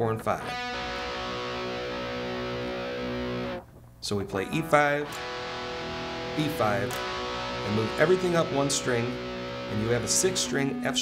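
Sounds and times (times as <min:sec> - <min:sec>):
electric guitar power chord: 0:00.4 - 0:03.6, 0:04.7 - 0:11.0.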